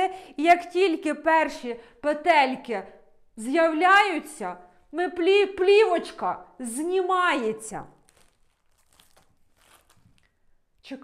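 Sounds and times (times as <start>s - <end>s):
cling film crinkling under scissors: 7.9s - 10.4s.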